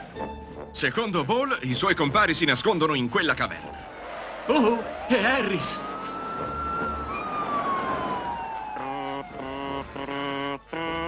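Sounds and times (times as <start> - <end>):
cartoon whining car tone: 5.6 - 11.0
buzzy horn blasts: 8.8 - 11.0.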